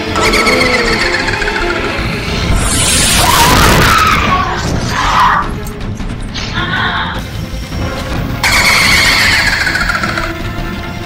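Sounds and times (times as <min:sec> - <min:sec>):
low rumbling music: 0:00.0 - 0:11.0.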